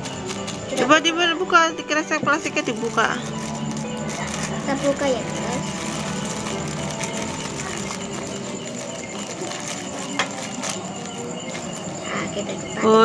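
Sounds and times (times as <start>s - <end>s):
plastic wrapper crackling: 0.0s - 1.8s, 2.4s - 12.0s
distant voices: 0.0s - 13.0s
faint music: 0.0s - 13.0s.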